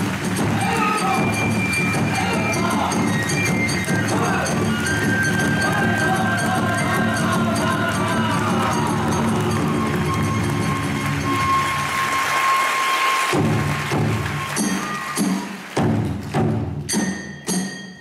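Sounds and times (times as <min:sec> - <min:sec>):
drums: 0:00.0 - 0:18.0
hand cymbals ringing: 0:00.6 - 0:12.8, 0:16.9 - 0:18.0
bamboo flute: 0:00.6 - 0:15.6.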